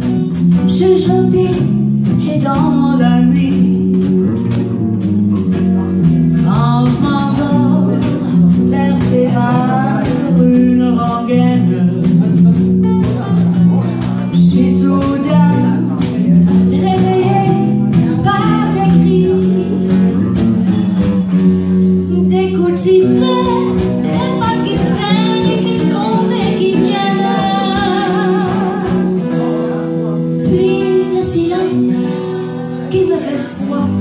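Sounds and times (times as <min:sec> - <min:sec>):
drums: 0:00.0 - 0:34.0
low bass notes: 0:00.0 - 0:34.0
strummed acoustic guitar: 0:00.0 - 0:34.0.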